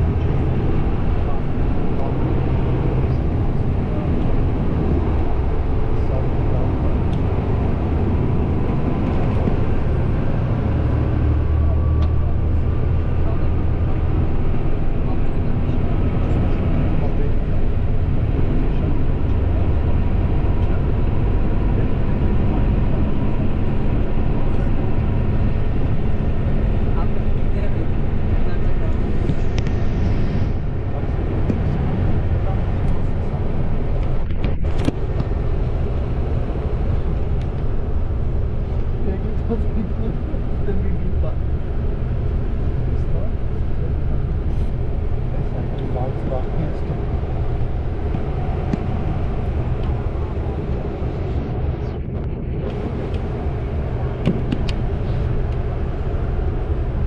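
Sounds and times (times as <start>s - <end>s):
vehicle interior road rumble: 0.0s - 57.0s.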